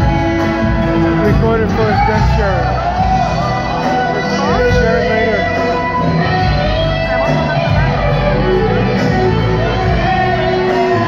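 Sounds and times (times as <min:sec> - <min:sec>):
electric guitar: 0:00.0 - 0:11.0
live band playing: 0:00.0 - 0:11.0.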